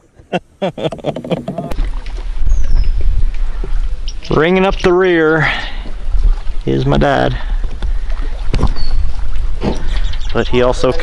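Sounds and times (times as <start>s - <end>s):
wind buffeting microphone: 1.6s - 11.0s.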